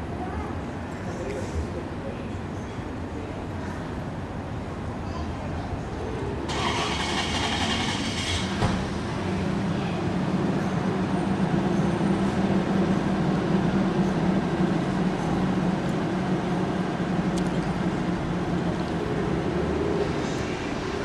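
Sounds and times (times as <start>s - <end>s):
street traffic: 0.0s - 21.0s
vehicle engine humming: 5.9s - 21.0s.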